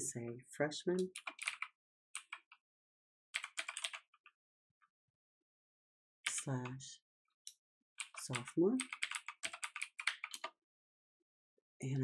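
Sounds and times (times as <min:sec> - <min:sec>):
keyboard typing: 0:01.0 - 0:02.6, 0:03.4 - 0:04.1, 0:06.3 - 0:06.6, 0:08.0 - 0:10.5.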